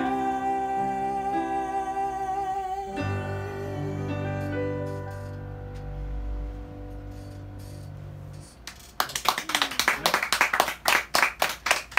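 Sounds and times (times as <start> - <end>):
small audience clapping: 8.6 - 11.9.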